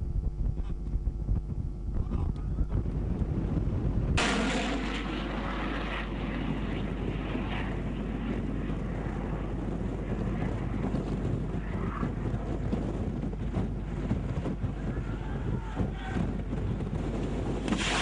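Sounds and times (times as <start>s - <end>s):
missile rushing roar: 4.2s - 8.8s, 17.7s - 18.0s.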